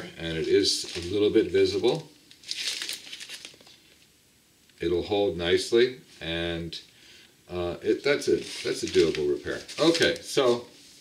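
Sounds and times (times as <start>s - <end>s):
plastic sleeve crinkling: 0.2s - 4.1s, 8.0s - 11.0s.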